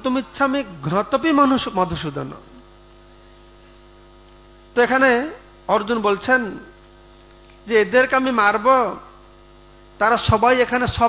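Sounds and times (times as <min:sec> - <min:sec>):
man speaking into a microphone: 0:00.0 - 0:02.6, 0:04.7 - 0:06.8, 0:07.6 - 0:09.2, 0:10.0 - 0:11.0
electrical mains hum: 0:00.0 - 0:11.0.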